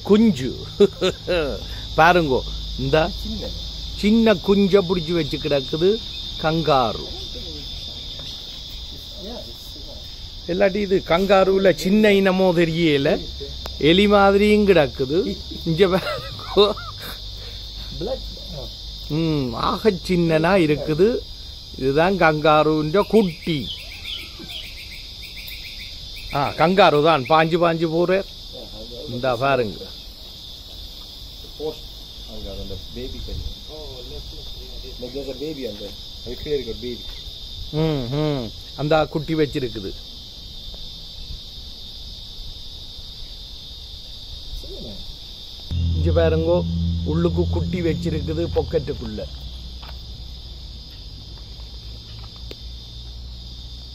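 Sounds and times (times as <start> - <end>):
high-pitched insect drone: 0.0 - 22.2, 45.7 - 50.2
high-pitched insect chorus: 0.0 - 53.9
short high chirps: 45.7 - 49.1
loud low hum: 45.7 - 49.8
low outdoor rumble: 45.7 - 49.8.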